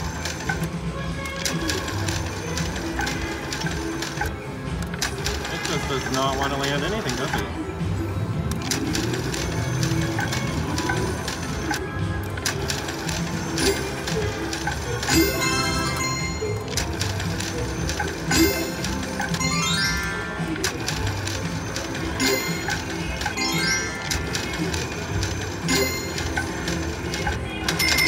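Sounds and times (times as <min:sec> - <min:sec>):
slot machine reels spinning: 0:00.0 - 0:07.5, 0:08.3 - 0:28.0
casino hubbub: 0:00.0 - 0:28.0.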